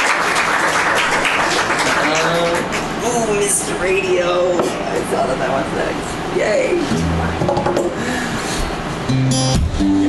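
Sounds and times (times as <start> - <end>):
audience applauding: 0.0 - 3.0.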